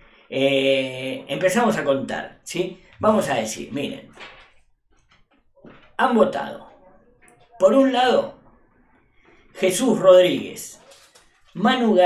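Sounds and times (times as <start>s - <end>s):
man talking: 0.3s - 4.2s, 6.0s - 6.7s, 7.6s - 8.4s, 9.6s - 10.8s, 11.6s - 12.0s.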